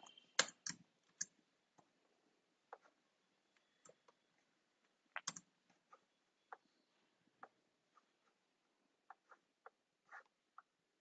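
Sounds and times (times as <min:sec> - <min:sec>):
keyboard and mouse clicks: 0:00.0 - 0:01.9, 0:05.1 - 0:06.7.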